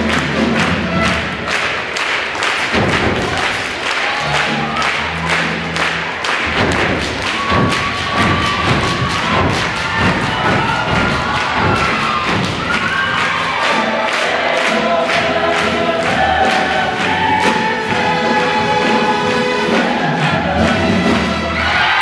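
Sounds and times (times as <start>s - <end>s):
steady drum beat: 0.0s - 21.6s
live show band: 0.0s - 22.0s
mixed-voice choir singing: 8.0s - 22.0s.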